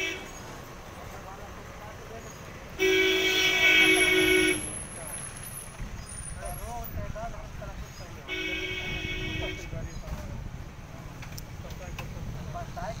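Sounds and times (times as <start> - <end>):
vehicle horn honk: 0.0 - 0.4, 2.8 - 4.8, 8.3 - 9.8
low street background noise: 0.0 - 13.0.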